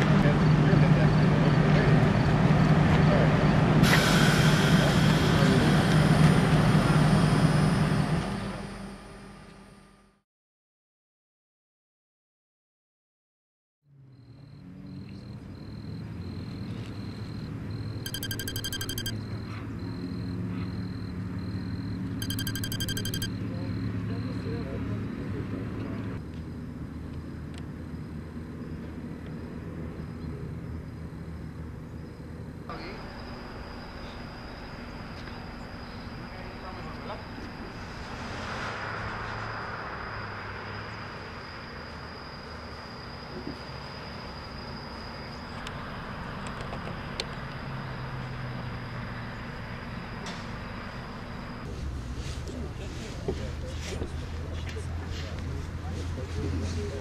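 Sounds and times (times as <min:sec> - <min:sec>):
rapid electronic beeping: 0:18.1 - 0:19.1, 0:22.2 - 0:23.3.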